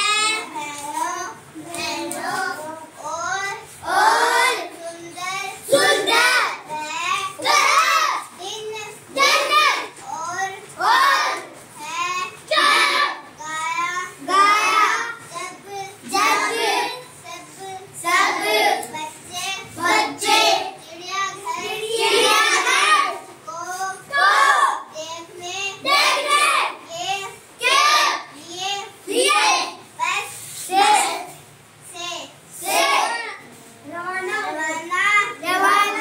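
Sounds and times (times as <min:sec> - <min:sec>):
children chanting a rhyme: 0:00.0 - 0:36.0.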